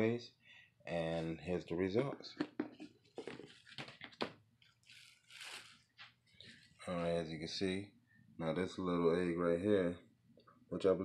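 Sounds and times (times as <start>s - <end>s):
plastic film crinkling: 3.2s - 6.1s.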